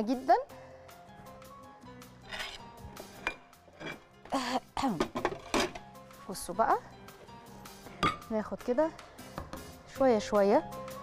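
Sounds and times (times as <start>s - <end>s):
quiet background music: 0.0s - 11.0s
utensils clinking against dishes: 3.2s - 5.8s.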